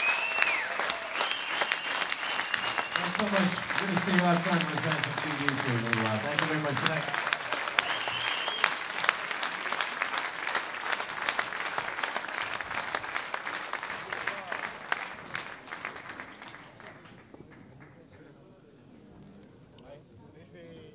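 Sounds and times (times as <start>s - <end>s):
high whistle from crowd: 0.0s - 3.2s, 7.8s - 8.8s
audience applauding: 0.0s - 17.9s.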